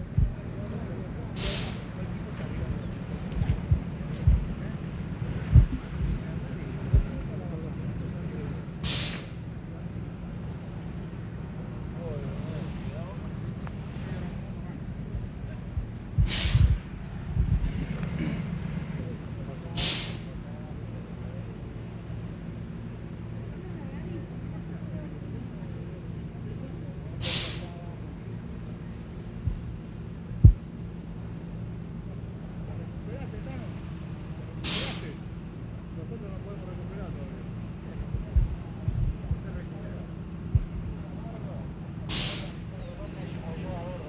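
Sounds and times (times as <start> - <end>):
dull low thumps: 0.0 - 7.6, 15.1 - 18.0, 29.2 - 31.1, 38.0 - 39.8, 40.4 - 41.0
faint distant voices: 0.0 - 44.0
low motor hum: 0.0 - 44.0
steady low rumble: 0.0 - 44.0
short hiss: 1.3 - 2.0, 8.8 - 9.4, 16.2 - 16.9, 19.8 - 20.3, 27.2 - 27.7, 34.6 - 35.2, 42.1 - 42.8.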